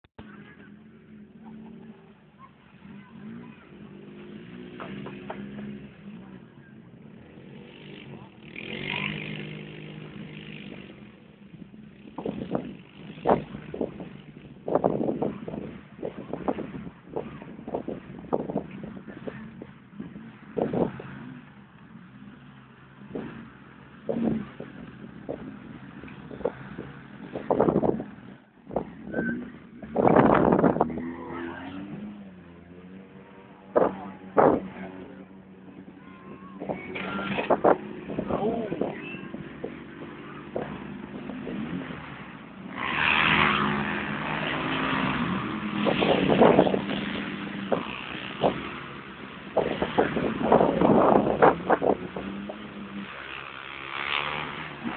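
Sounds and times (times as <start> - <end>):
off-road engines humming: 0.1 - 54.9
engine revving bursts: 7.2 - 11.2, 22.3 - 54.9.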